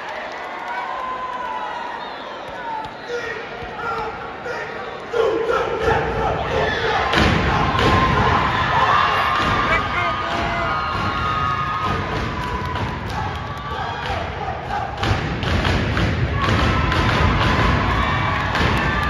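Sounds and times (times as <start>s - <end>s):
voices shouting and cheering: 0.0s - 15.4s.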